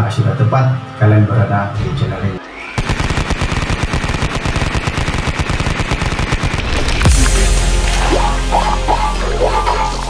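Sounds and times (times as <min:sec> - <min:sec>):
machine-gun fire: 0:02.8 - 0:07.2.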